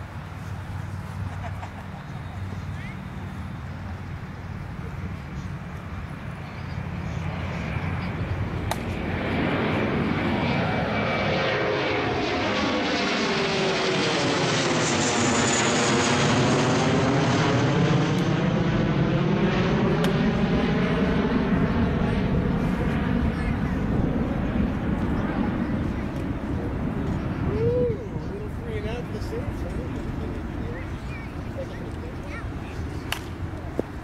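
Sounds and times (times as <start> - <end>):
airplane passing overhead: 0.0 - 34.0.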